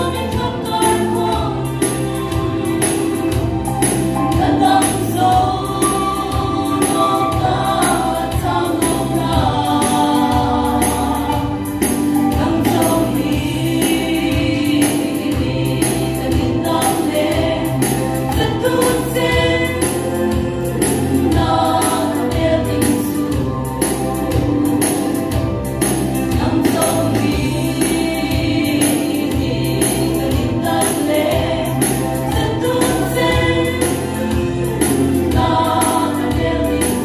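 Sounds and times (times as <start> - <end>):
steady percussion beat: 0.0 - 37.0
women singing in harmony: 0.0 - 37.0.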